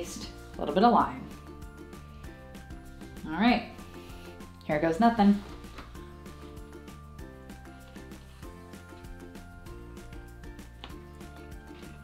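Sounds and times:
quiet background music with beat: 0.0 - 12.0.

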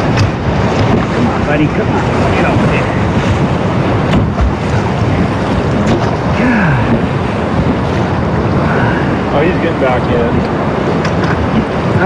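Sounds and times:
whitewater rushing: 0.0 - 12.0
wind buffeting microphone: 0.0 - 12.0.

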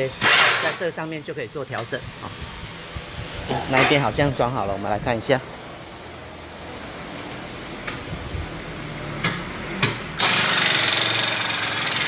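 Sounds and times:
workshop background noise: 0.0 - 12.0.

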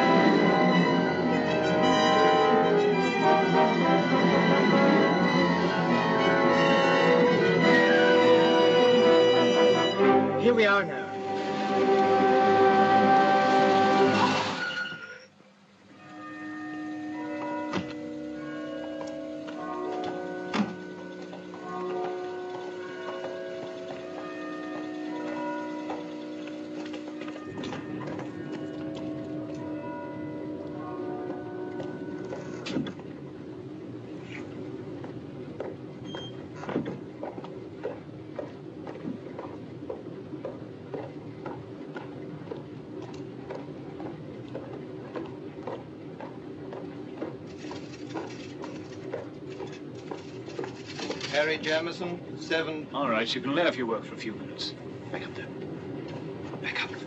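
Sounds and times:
soft film score music: 0.0 - 57.0
mechanical hum with clatter: 11.1 - 57.0.

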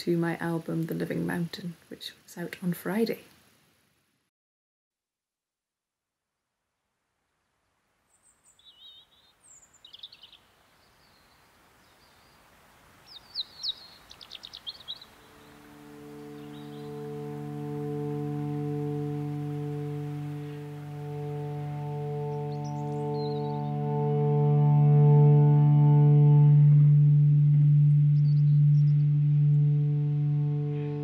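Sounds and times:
soft hiss: 0.0 - 4.3, 6.9 - 24.3
birdsong chirps and trill: 8.2 - 25.1, 27.8 - 31.0
sustained drone chord: 15.0 - 31.0.

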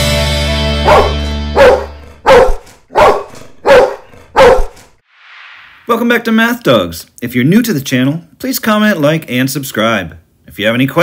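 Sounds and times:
rock music chord: 0.0 - 2.0
dog barking: 0.8 - 4.9.

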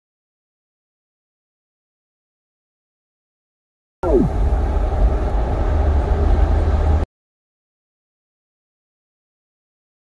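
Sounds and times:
short falling pitch sweep: 4.0 - 4.6
car interior road rumble: 4.0 - 7.0.

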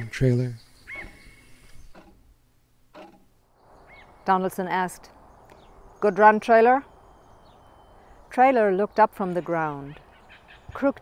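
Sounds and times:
bird chirp: 0.0 - 2.4, 3.4 - 11.0.

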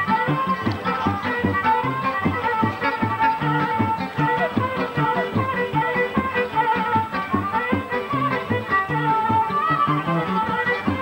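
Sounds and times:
folk dance music: 0.0 - 11.0.

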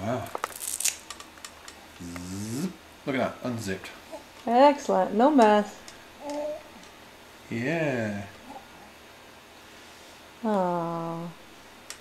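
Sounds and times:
man voicing long rising zip: 2.0 - 2.8.

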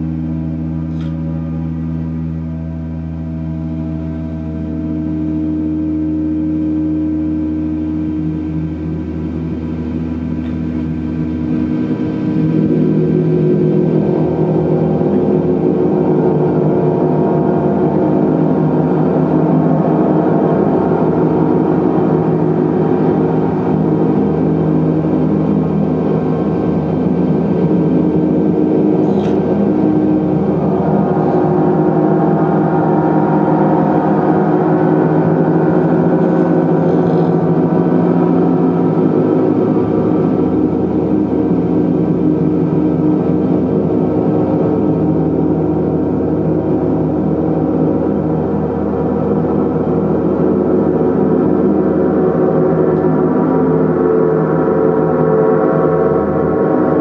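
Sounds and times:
gongs played with mallet: 0.0 - 57.0.

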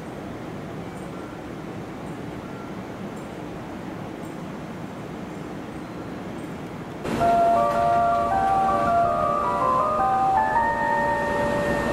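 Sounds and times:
steady low noise: 7.0 - 11.9
chime-like electronic melody: 7.1 - 11.9.

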